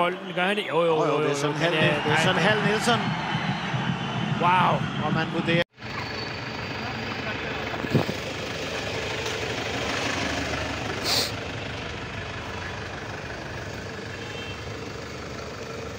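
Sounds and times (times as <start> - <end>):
traffic hum: 0.0 - 15.9
short hiss: 11.0 - 11.4.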